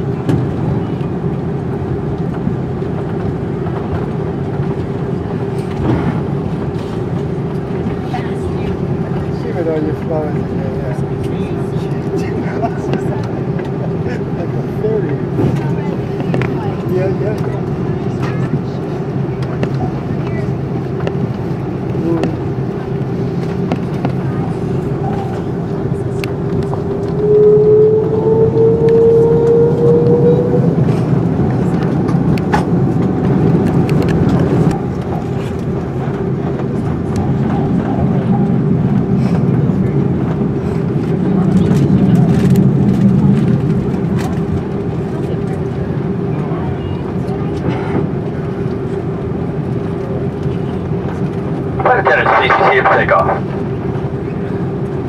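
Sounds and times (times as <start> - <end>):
jet engine hum with whine: 0.0 - 55.0
rising high tone: 27.2 - 30.8.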